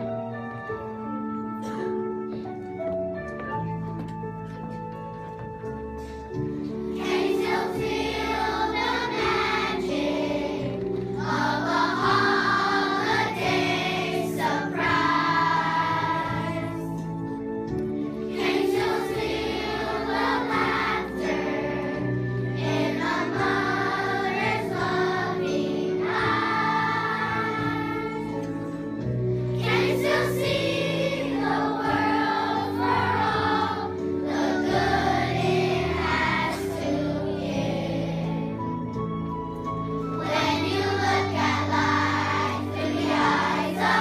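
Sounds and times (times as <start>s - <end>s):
instrumental accompaniment: 0.0s - 44.0s
children singing: 6.9s - 17.1s, 18.3s - 28.6s, 29.6s - 38.6s, 40.2s - 44.0s.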